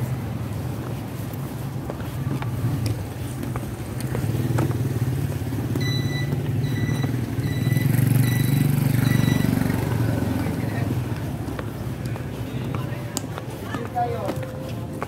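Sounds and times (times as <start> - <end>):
vehicle engine running: 0.0 - 13.6
short electronic beeps: 5.8 - 9.8.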